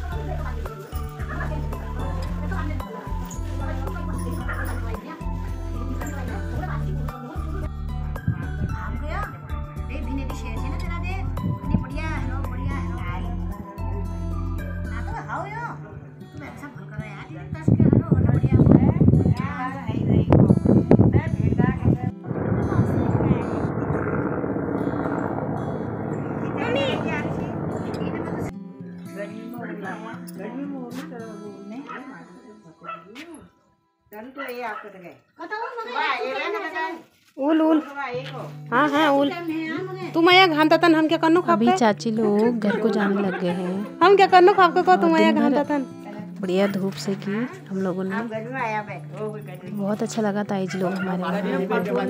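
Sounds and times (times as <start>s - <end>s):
music with deep bass line: 0.0s - 15.2s, 17.6s - 28.6s
aircraft drone overhead: 22.2s - 28.5s.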